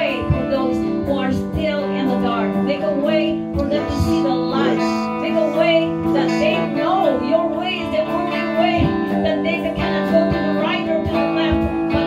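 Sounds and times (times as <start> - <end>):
electric guitar chords: 0.0 - 12.0
person singing: 0.0 - 12.0.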